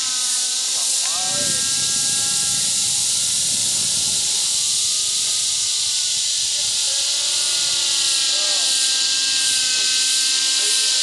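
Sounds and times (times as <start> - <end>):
model helicopter engine and rotor: 0.0 - 11.0
strong hiss: 0.0 - 11.0.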